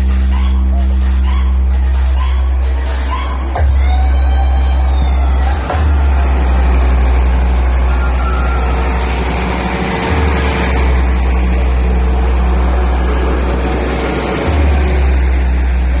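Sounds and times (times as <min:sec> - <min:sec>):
deep sub-bass humming tone: 0:00.0 - 0:16.0
diesel generator running: 0:00.0 - 0:16.0.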